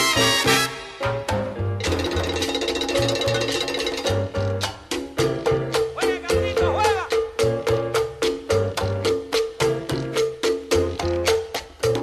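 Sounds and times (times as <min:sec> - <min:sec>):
bass line: 0:00.0 - 0:12.0.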